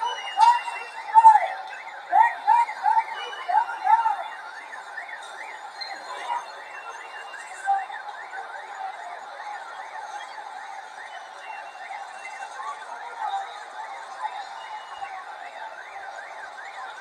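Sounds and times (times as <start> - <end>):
street and crowd noise: 0.0 - 17.0.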